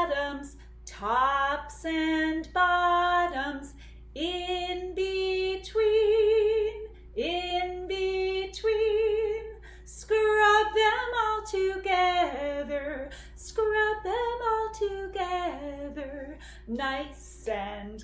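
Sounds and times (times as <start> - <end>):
woman singing unaccompanied: 0.0 - 18.0.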